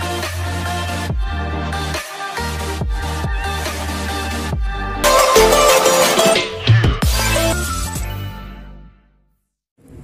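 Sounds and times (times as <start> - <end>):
electronic intro music: 5.0 - 7.8.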